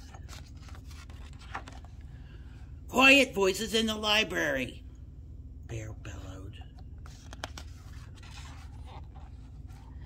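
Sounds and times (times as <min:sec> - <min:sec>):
paper rustling: 0:00.0 - 0:02.0, 0:07.0 - 0:10.0.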